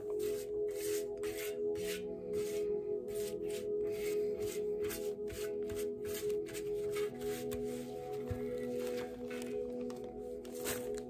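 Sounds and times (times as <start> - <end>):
background music: 0.0 - 11.0
paper cards rustling: 7.4 - 11.0.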